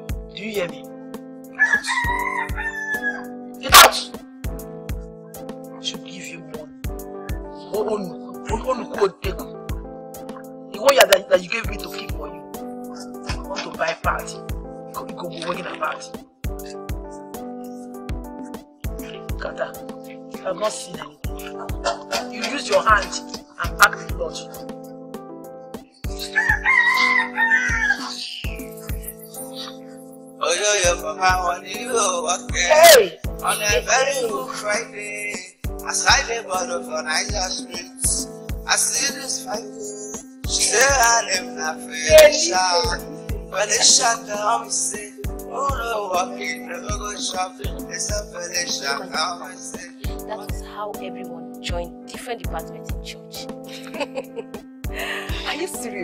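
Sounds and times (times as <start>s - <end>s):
background music: 0.0s - 56.0s
rooster crowing: 1.6s - 3.3s, 26.3s - 28.1s
low drum beat: 21.0s - 24.3s.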